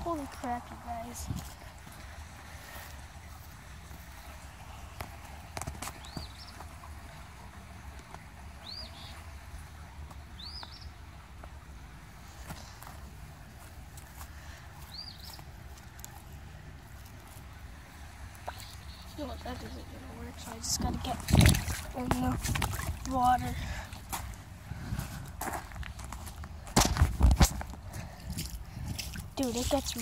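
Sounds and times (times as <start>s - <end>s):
bird chirping: 6.0s - 6.6s, 8.6s - 9.2s, 10.3s - 11.0s, 14.8s - 15.5s, 18.4s - 20.6s.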